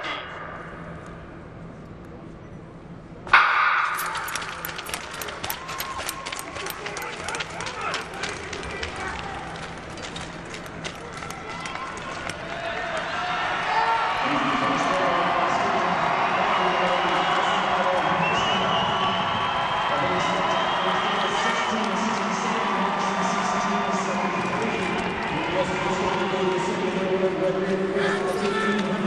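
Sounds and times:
sharp clicks: 3.9s - 12.4s
voices: 4.0s - 18.8s.

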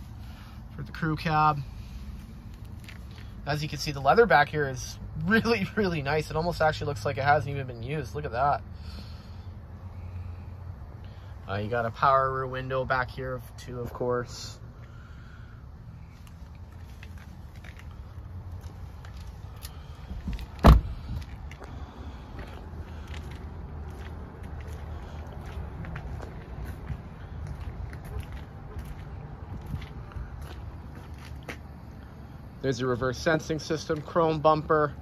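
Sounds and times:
footsteps: 16.1s - 31.7s
truck door shutting: 20.2s - 21.4s.

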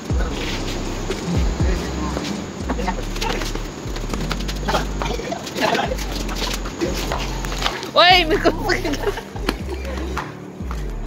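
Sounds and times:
voices shouting and yelling: 0.0s - 10.5s
steady low hum: 0.0s - 11.0s.

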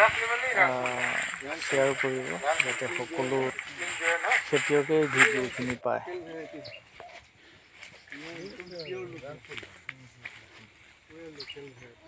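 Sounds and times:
faint voices talking: 0.0s - 12.0s
quiet outdoor ambience: 0.0s - 12.0s.

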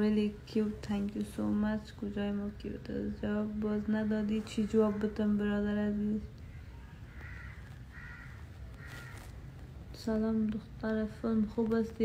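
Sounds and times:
animal calling harshly: 6.6s - 9.3s.

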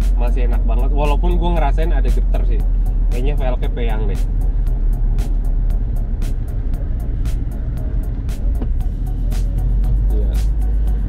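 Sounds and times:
background music with ticking beat: 0.0s - 11.0s
road and wind rumble: 0.0s - 11.0s.

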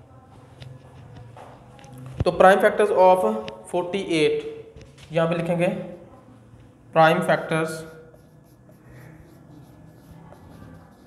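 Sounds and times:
marker writing on whiteboard: 7.1s - 11.0s.

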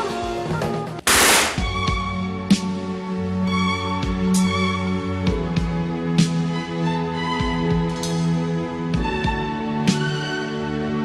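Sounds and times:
rifle gunfire: 1.1s - 1.8s
orchestral music: 1.1s - 2.1s.

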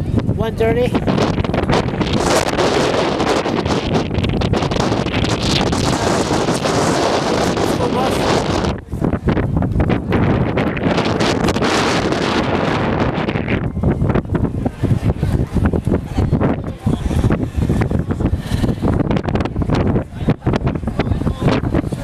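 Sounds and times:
strong wind on microphone: 0.0s - 22.0s.

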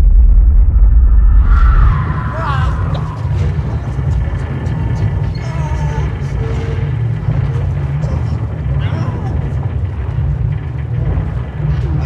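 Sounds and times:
loud low rumble: 0.0s - 12.0s.

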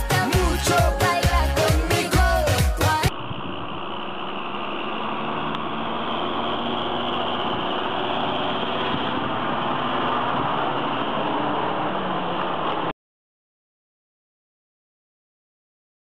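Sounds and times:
tractor engine running: 0.0s - 12.9s.

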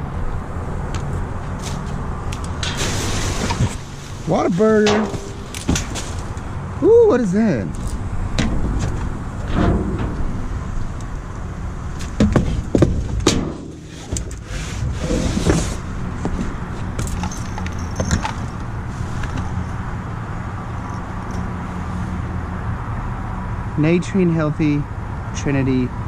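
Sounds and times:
steady low hum: 0.0s - 22.6s
cardboard scraping and rustling: 2.7s - 6.4s, 12.0s - 17.4s
items knocking and clunking: 4.7s - 6.4s, 12.0s - 14.4s.

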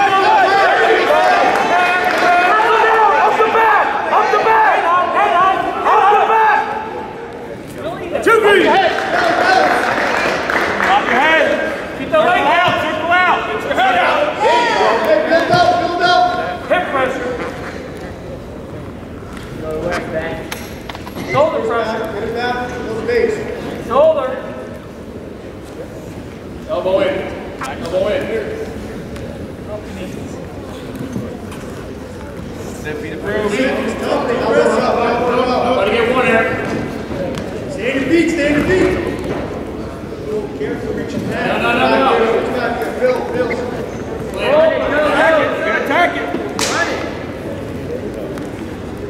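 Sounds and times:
people shouting: 0.0s - 7.0s
crowd noise: 0.0s - 49.0s.

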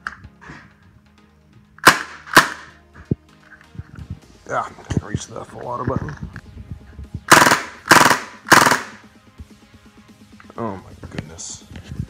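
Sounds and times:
airsoft gun firing bursts: 1.8s - 2.8s, 7.3s - 9.0s.

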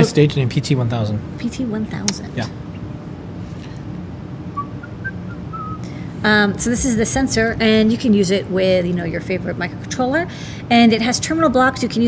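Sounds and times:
low hum of room noise: 0.0s - 12.0s
person whistling: 4.6s - 5.8s.

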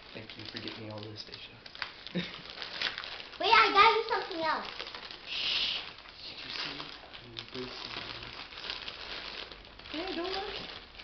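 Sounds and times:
wrapping paper crinkling: 0.0s - 11.0s.

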